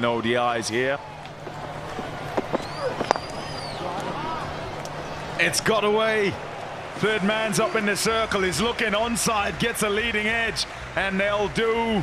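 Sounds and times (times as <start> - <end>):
steady low hum: 0.0 - 12.0
cricket bat striking ball: 1.3 - 5.2.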